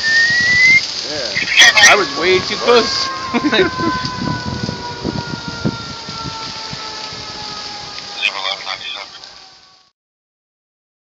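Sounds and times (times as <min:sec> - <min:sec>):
distant siren wailing: 0:00.0 - 0:09.9.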